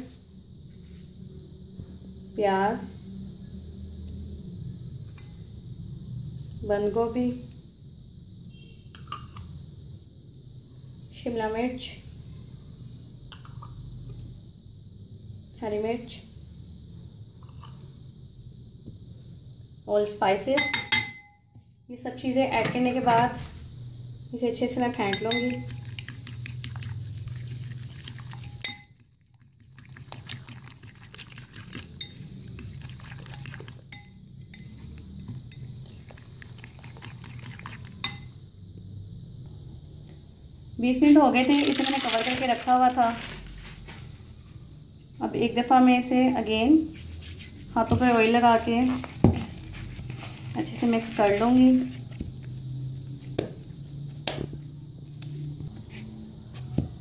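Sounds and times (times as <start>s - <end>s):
fork clinking against bowl: 24.9s - 26.9s, 31.6s - 38.4s
hands kneading soft dough: 46.8s - 57.0s.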